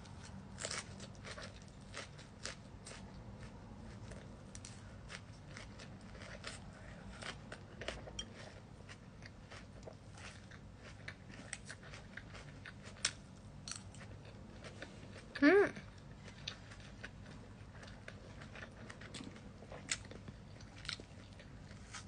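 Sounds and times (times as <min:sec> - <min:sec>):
person chewing food: 0:00.0 - 0:22.0.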